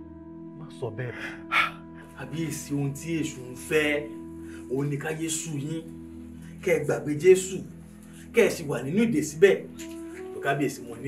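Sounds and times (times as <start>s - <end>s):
soft film music with held chords: 0.0s - 11.0s
man speaking: 0.6s - 4.1s, 4.7s - 5.9s, 6.6s - 7.7s, 10.4s - 11.0s
man gasping: 1.2s - 2.1s.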